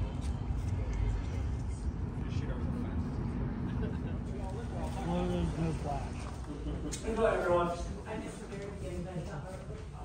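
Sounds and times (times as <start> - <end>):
steady low rumble: 0.0 - 9.2.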